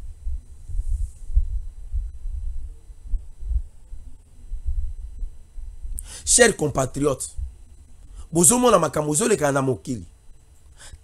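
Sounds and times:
low throbbing rumble: 0:00.0 - 0:06.1, 0:07.3 - 0:08.3.

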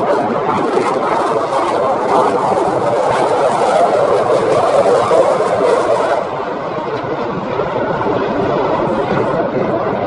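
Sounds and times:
fighter jet flying past: 0:00.0 - 0:10.0.

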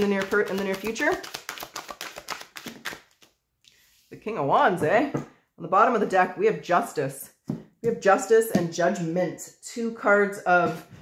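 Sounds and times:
cards being shuffled: 0:00.0 - 0:03.8.

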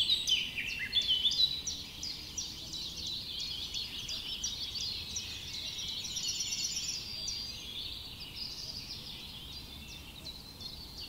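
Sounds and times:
low background noise: 0:00.0 - 0:11.0
small birds chirping: 0:00.0 - 0:11.0.

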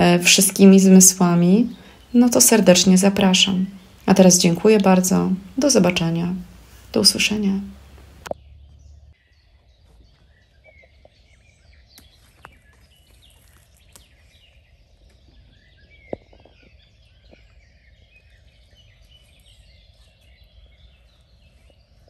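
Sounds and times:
songbirds chirping and trilling: 0:00.0 - 0:22.0.

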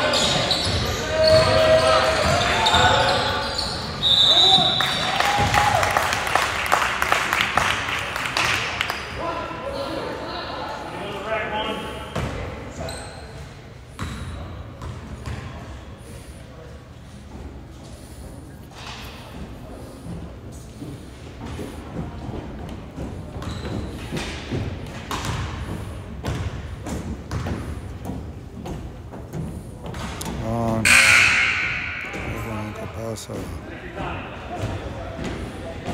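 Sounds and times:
basketball bouncing on hardwood: 0:27.3 - 0:28.8
people talking: 0:30.3 - 0:35.9.

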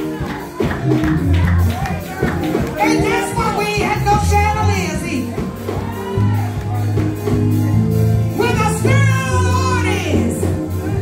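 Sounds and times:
deep bass notes: 0:00.0 - 0:11.0.

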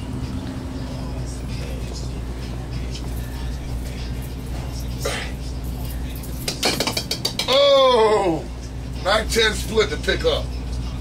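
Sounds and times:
loud drawn-out yell: 0:07.5 - 0:08.4.

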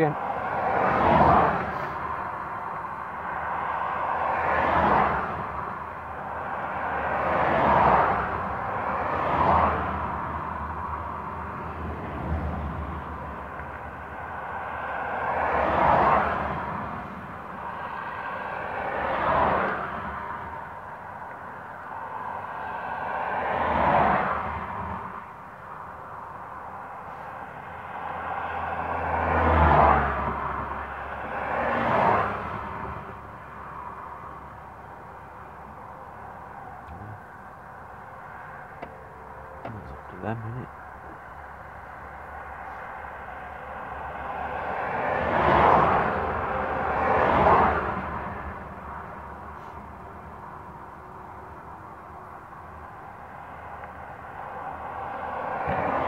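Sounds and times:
cars passing by: 0:00.0 - 0:56.0.

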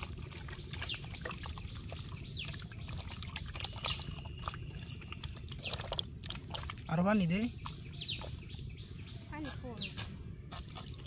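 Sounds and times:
wet squishing of raw chicken: 0:00.0 - 0:08.5.

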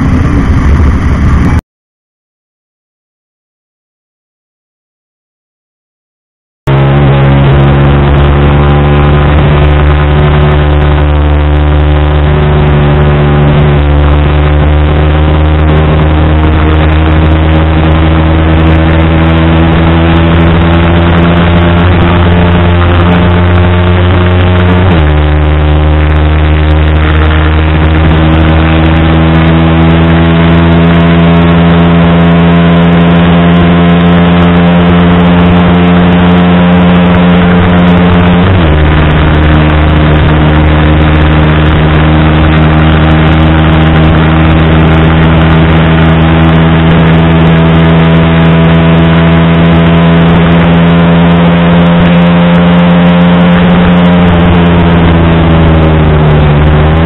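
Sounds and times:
motorbike engine at full throttle: 0:00.0 - 0:01.6, 0:06.7 - 0:57.0.

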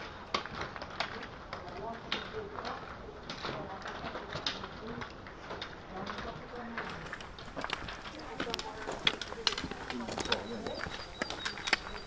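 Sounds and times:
footsteps on pavement: 0:00.0 - 0:12.0
trekking poles tapping: 0:00.0 - 0:12.0.

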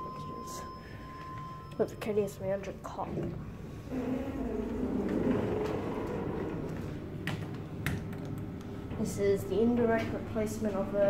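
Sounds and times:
elevator mechanical hum with whine: 0:00.0 - 0:11.0.

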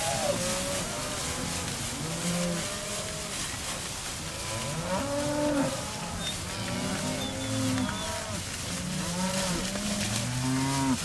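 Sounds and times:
cattle mooing: 0:04.4 - 0:11.0.

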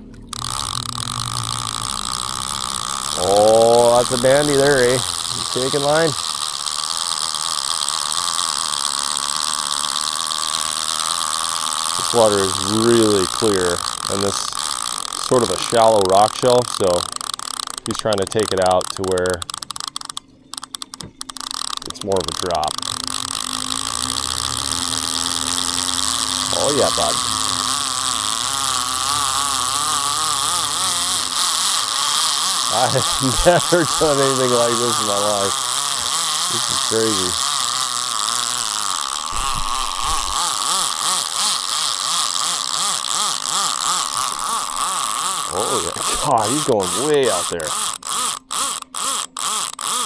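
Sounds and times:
fishing reel clicker clicking: 0:00.1 - 0:50.0.

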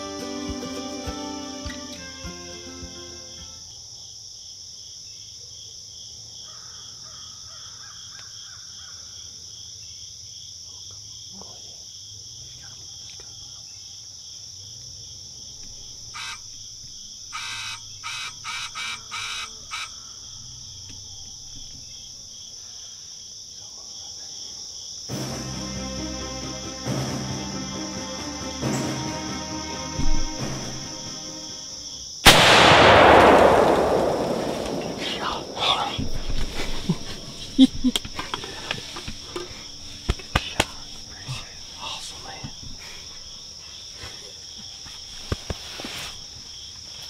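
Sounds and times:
insect chorus trilling: 0:00.0 - 0:25.2, 0:25.8 - 0:32.4, 0:33.2 - 0:47.0
bird cawing: 0:16.2 - 0:16.5, 0:17.3 - 0:20.2.

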